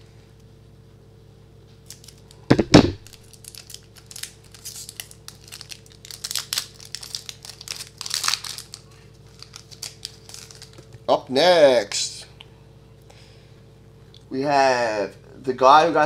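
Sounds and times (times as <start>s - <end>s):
scissors cutting wrapper: 1.8s - 2.4s, 3.0s - 10.9s
wrapper crinkling and tearing: 1.8s - 2.4s, 3.0s - 11.0s.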